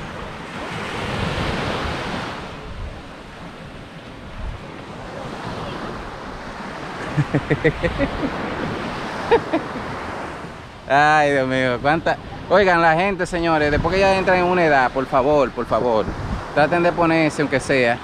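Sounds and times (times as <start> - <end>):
wind on microphone: 0.0 - 10.9, 11.6 - 18.0
small waves breaking on beach: 0.0 - 18.0.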